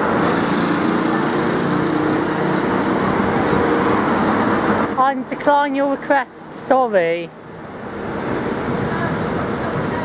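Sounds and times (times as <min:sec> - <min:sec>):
car engines humming: 0:00.0 - 0:10.0
tyre noise on street: 0:00.0 - 0:10.0.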